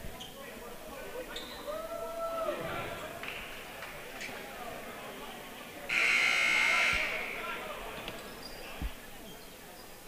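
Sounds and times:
crowd chatter: 0.0s - 10.0s
scoreboard horn buzz: 5.9s - 7.4s.

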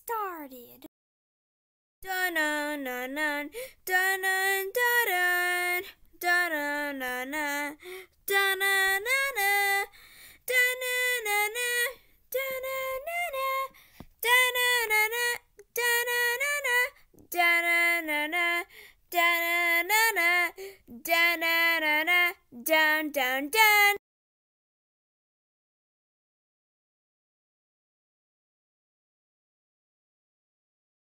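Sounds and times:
child singing unaccompanied: 2.0s - 24.0s.

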